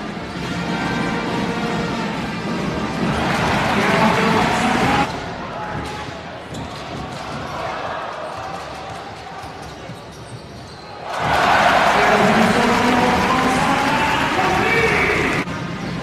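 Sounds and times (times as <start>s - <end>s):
arena crowd noise: 0.0s - 16.0s.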